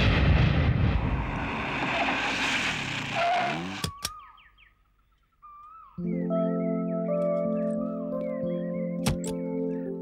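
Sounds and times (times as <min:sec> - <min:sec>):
brake squeal: 0:01.8 - 0:04.0.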